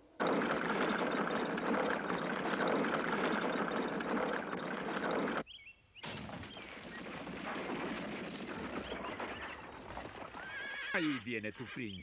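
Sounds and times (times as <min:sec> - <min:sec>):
horse hooves clopping: 0:00.0 - 0:05.4, 0:06.3 - 0:11.0
horse whinnying: 0:07.6 - 0:11.8.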